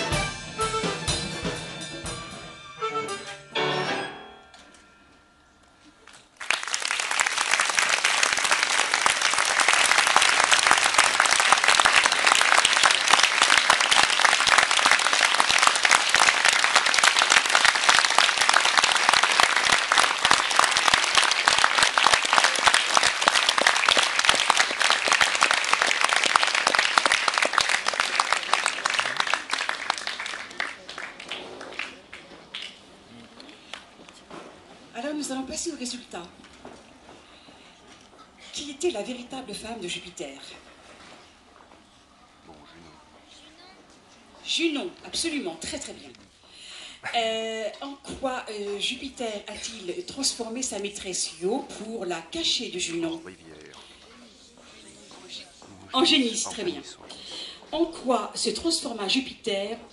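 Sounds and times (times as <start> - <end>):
audience applause: 6.0 - 32.9.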